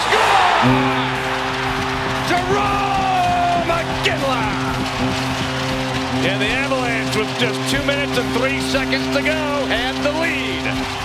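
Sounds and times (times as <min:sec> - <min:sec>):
crowd cheering: 0:00.0 - 0:11.0
goal horn blast: 0:00.0 - 0:11.0.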